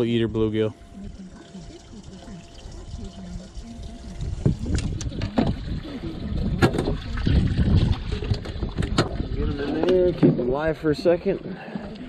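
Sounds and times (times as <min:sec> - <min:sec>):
water lapping: 0:00.8 - 0:12.0
low wind noise: 0:02.4 - 0:10.6.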